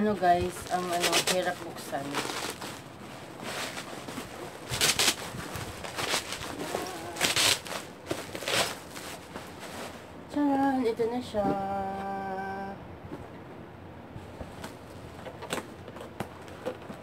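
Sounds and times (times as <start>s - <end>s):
bubble wrap crinkling: 0.0s - 10.2s.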